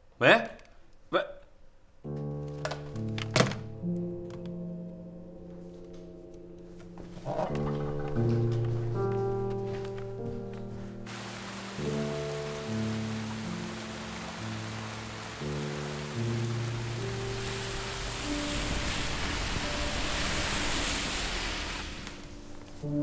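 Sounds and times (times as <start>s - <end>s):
slow soundtrack music: 1.7s - 23.0s
heavy rain falling: 11.1s - 23.0s.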